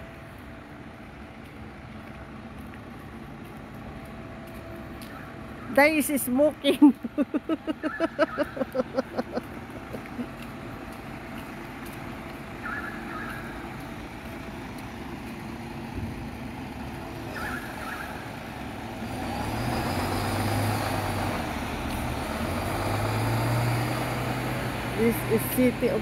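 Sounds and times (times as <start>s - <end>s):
street traffic: 0.0s - 26.0s
vehicle engine hum: 0.0s - 26.0s.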